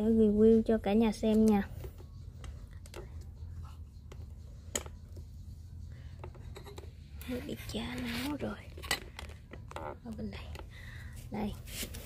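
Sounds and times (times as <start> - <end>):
light rubbing and scratching: 3.3 - 9.7, 11.4 - 12.0.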